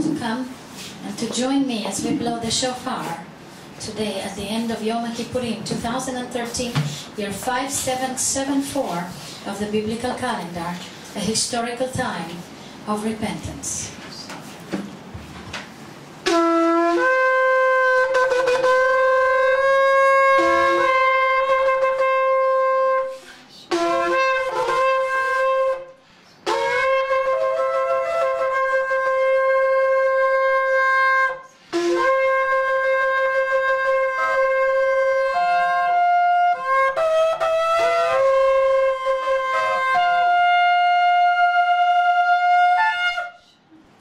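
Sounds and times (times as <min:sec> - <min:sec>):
shofar blast: 0:16.2 - 0:43.6.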